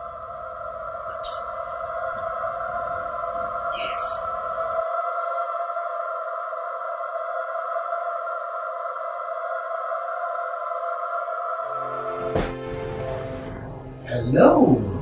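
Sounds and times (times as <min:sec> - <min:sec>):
electronic drone of high tones: 0:00.0 - 0:04.8
deeper musical notes: 0:11.8 - 0:15.0.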